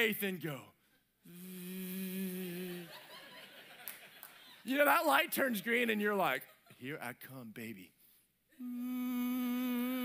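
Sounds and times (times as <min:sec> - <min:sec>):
man humming a steady note: 0:01.3 - 0:03.0, 0:08.6 - 0:10.0.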